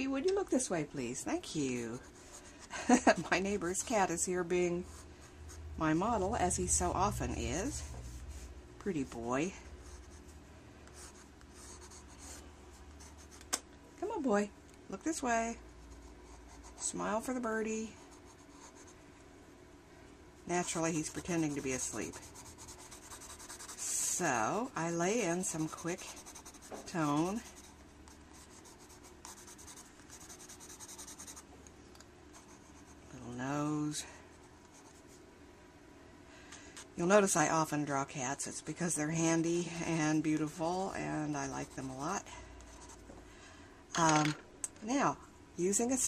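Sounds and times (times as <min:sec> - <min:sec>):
pencil scratching on paper: 0:10.9 - 0:13.4, 0:20.5 - 0:24.2, 0:25.1 - 0:31.4, 0:41.4 - 0:43.0.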